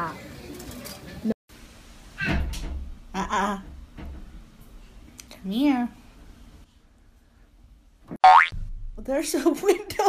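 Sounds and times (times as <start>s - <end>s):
cartoon boing twang: 8.2s - 8.6s
low hum: 8.5s - 9.3s.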